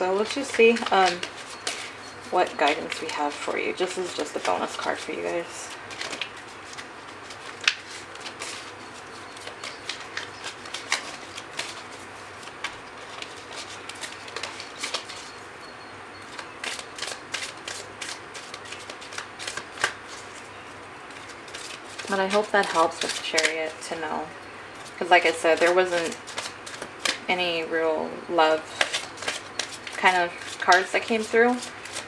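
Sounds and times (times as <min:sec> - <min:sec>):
cards being shuffled: 0:00.1 - 0:15.4, 0:16.3 - 0:23.9, 0:24.8 - 0:27.3, 0:28.7 - 0:32.0.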